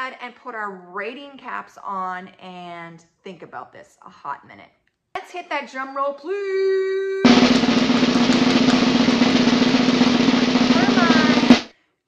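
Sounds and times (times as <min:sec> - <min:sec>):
loud drum hit: 0:07.2 - 0:11.7
snare drum roll: 0:07.2 - 0:11.7.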